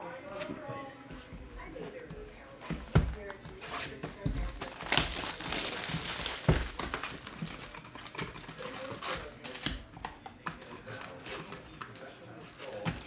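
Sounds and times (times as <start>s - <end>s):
cardboard and plastic crinkling: 2.4s - 13.0s.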